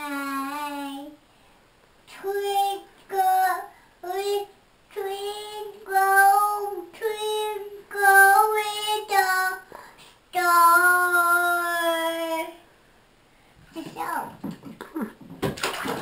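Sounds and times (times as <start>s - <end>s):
toddler singing: 0.0s - 1.2s, 2.1s - 9.7s, 10.3s - 12.6s.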